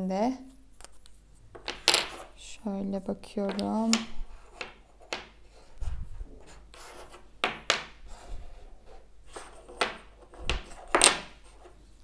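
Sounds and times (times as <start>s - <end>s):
wooden blocks clicking and knocking: 0.8s - 2.3s, 3.4s - 5.4s, 7.4s - 8.0s, 9.4s - 11.7s
wooden blocks sliding and rubbing: 0.8s - 2.4s, 3.5s - 12.0s.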